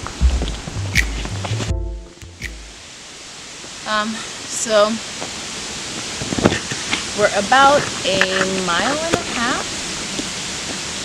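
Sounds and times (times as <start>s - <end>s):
steady background hiss: 2.0s - 11.0s
woman speaking: 3.9s - 5.0s, 7.2s - 9.7s.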